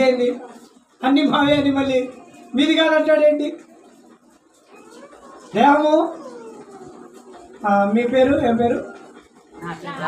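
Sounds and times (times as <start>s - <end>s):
man's voice through a microphone: 0.0s - 3.8s, 5.4s - 6.6s, 7.6s - 9.2s.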